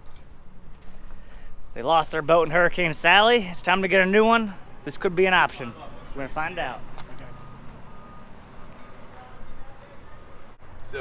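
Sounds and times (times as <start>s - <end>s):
low engine rumble: 0.0s - 11.0s
reversing alarm beeping: 4.6s - 10.6s.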